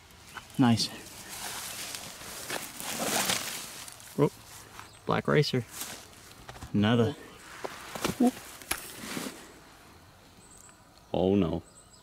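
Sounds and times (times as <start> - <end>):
rustle of dry grass and leaves: 0.0 - 6.8, 7.4 - 10.7.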